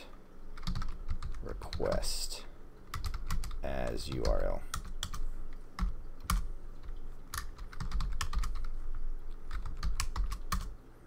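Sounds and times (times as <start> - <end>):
keyboard typing clicks: 0.5 - 2.0, 2.9 - 10.8.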